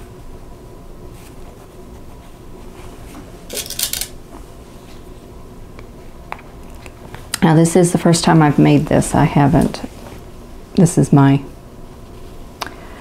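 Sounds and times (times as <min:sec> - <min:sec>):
steady hum: 0:00.0 - 0:13.0.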